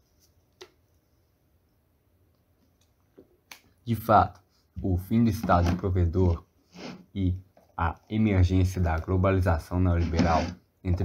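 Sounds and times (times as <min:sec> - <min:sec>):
person reading aloud: 0:03.8 - 0:11.0.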